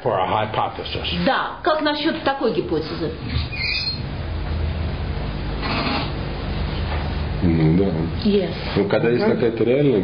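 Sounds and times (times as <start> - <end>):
low mains hum: 0.0 - 10.0.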